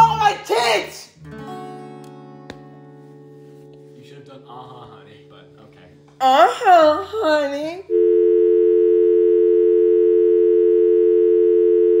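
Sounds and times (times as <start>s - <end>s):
telephone dial tone: 7.9s - 12.0s.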